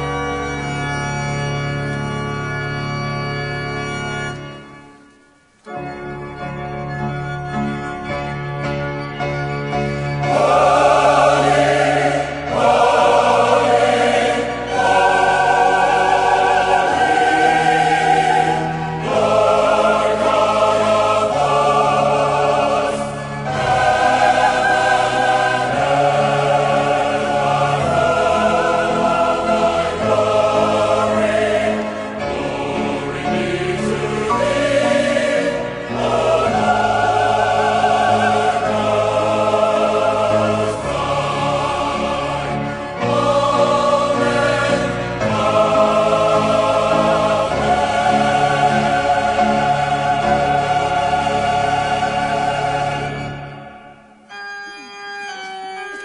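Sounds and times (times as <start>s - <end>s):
church choir singing: 0.0s - 56.0s.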